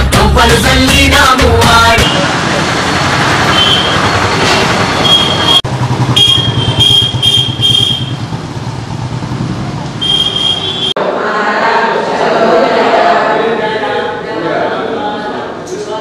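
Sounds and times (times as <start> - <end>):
street traffic: 0.1 - 11.1
short high-pitched toots: 3.5 - 8.2.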